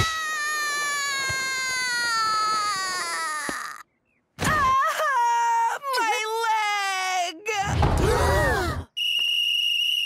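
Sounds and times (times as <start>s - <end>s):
cartoon boy wailing in pain: 0.0s - 3.8s.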